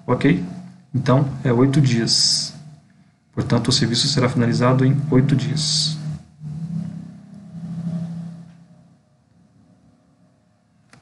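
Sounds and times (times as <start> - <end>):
low steady hum: 0.0 - 11.0.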